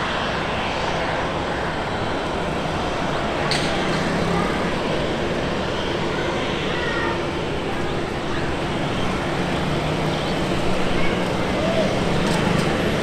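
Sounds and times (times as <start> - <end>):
jet engines rumbling: 0.0 - 13.0.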